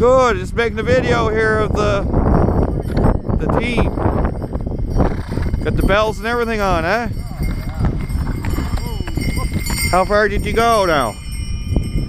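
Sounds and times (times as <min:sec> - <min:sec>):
sleigh bells jingling: 0:01.6 - 0:12.0
horse hoofbeats on snow: 0:04.2 - 0:11.2.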